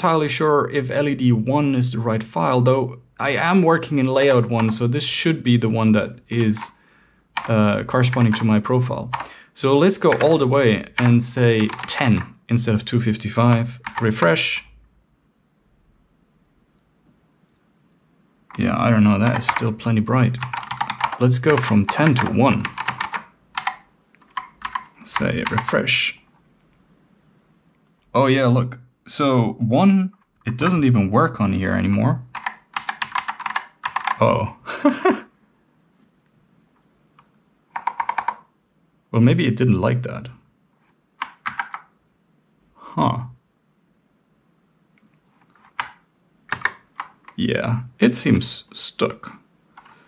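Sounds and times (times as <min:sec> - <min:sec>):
mechanical keyboard typing: 0:04.4 - 0:04.9, 0:07.4 - 0:09.3, 0:09.9 - 0:12.3, 0:13.5 - 0:14.3, 0:18.5 - 0:26.0, 0:32.3 - 0:34.2, 0:37.7 - 0:38.5, 0:41.2 - 0:41.9, 0:45.4 - 0:47.4.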